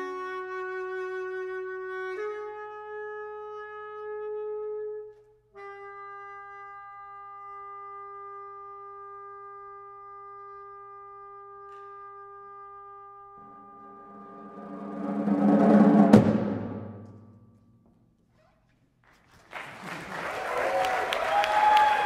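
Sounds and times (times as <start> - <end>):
saxophone long held notes: 0.0 - 15.2.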